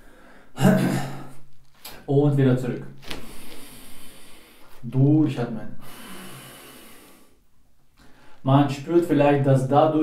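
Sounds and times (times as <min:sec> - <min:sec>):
soft breath: 0:03.1 - 0:04.8, 0:05.8 - 0:08.4.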